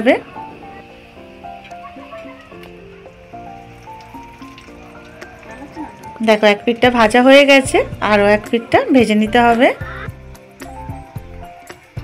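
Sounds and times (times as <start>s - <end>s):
fish sizzling in hot oil: 0.0s - 12.0s
soft background music: 0.0s - 12.0s.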